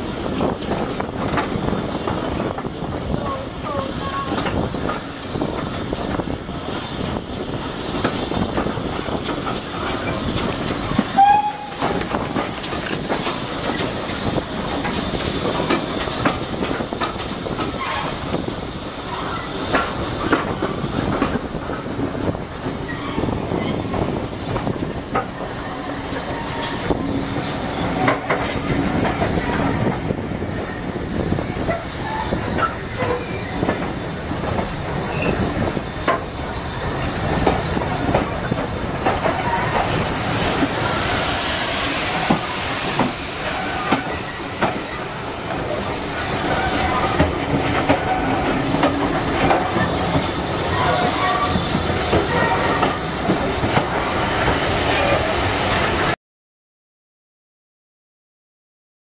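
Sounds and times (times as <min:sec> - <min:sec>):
train carriage rumbling on rails: 0:00.0 - 0:56.2
wheels clacking over rail joints: 0:00.3 - 0:55.3
wheel squeal: 0:35.0 - 0:35.5.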